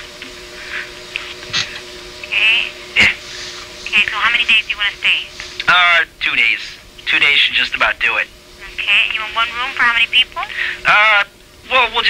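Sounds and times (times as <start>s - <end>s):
phone line hum: 0.0s - 12.0s.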